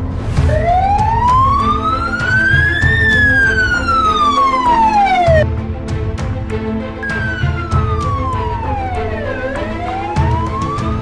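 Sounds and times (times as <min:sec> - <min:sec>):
background music: 0:00.0 - 0:11.0
ambulance siren wailing: 0:00.4 - 0:05.5, 0:07.0 - 0:11.0.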